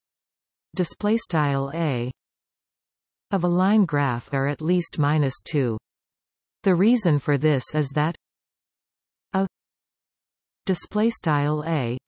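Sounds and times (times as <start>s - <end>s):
synthesized voice speaking: 6.7s - 8.2s.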